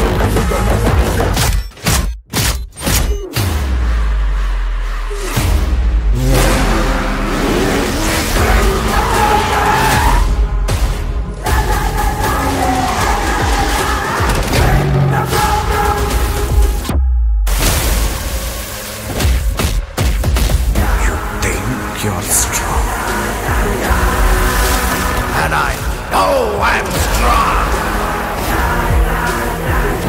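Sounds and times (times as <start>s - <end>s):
dramatic orchestral score: 3.4s - 17.0s, 20.6s - 30.0s
deep bass rumble: 3.6s - 9.5s.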